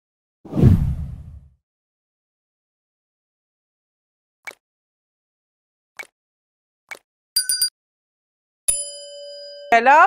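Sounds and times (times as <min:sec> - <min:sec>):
deep whoosh: 0:00.5 - 0:01.5.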